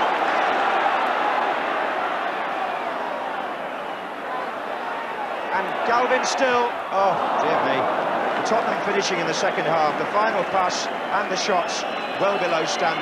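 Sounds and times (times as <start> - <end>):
stadium crowd voices: 0.0 - 13.0.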